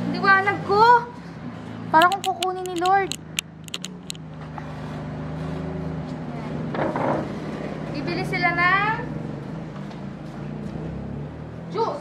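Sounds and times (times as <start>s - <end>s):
vehicle engine running: 1.9s - 5.5s
light clicks: 2.0s - 4.2s.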